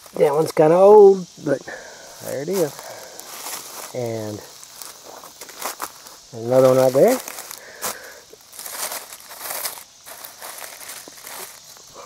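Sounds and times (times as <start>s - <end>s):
footsteps crunching through dry leaves: 1.2s - 11.9s.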